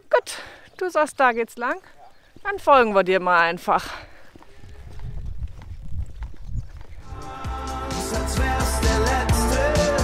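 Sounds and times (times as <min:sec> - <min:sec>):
footsteps on asphalt: 0:01.6 - 0:07.1
background music: 0:07.1 - 0:10.0.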